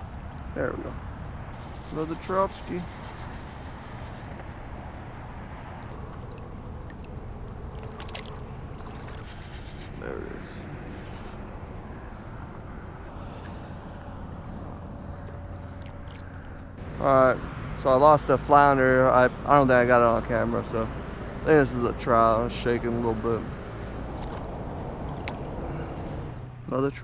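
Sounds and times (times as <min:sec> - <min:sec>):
water noise: 0:00.0 - 0:26.4
wind: 0:00.0 - 0:27.0.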